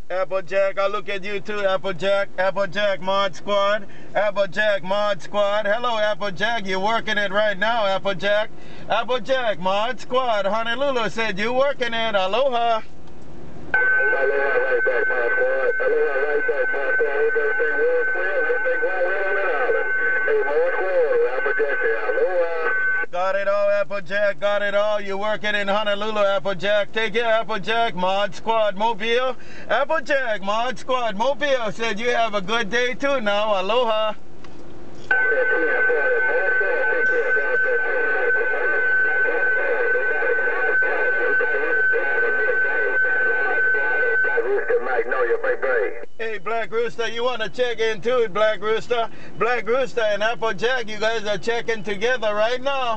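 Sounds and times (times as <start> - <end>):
garbled radio voices: 0.0 - 12.8, 13.8 - 34.1, 35.1 - 52.9.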